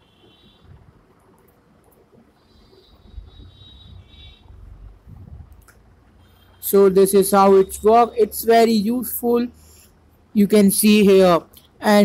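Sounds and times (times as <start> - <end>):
faint low rumble: 0.5 - 6.2.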